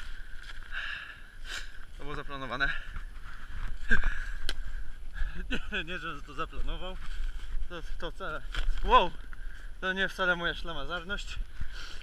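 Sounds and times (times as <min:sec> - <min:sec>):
camera rubbing against clothing: 0:02.9 - 0:04.0, 0:06.3 - 0:09.4.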